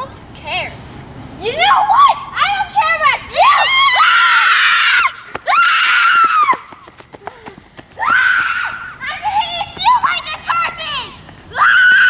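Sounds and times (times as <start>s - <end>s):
girls screaming: 3.2s - 6.7s, 7.9s - 10.8s, 11.5s - 12.0s.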